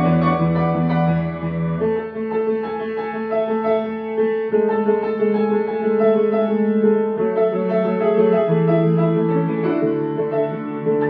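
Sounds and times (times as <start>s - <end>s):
grand piano chords: 0.0s - 11.0s.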